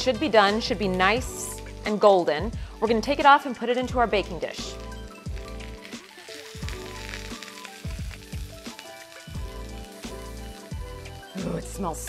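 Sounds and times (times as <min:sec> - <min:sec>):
oil sizzling in a skillet: 0:00.0 - 0:12.0.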